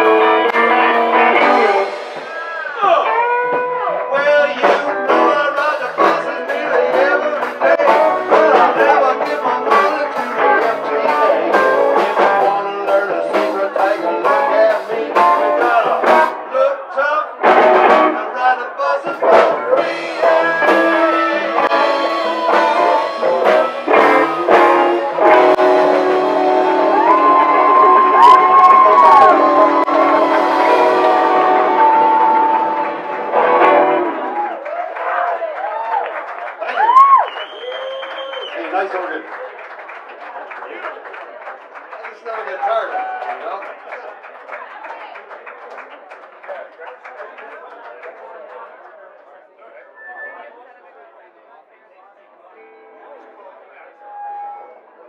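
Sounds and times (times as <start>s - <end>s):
live blues band playing: 0.0s - 16.6s, 17.4s - 34.8s
crowd chatter: 0.0s - 55.0s
audience cheering and whooping: 24.8s - 38.6s, 42.8s - 43.5s.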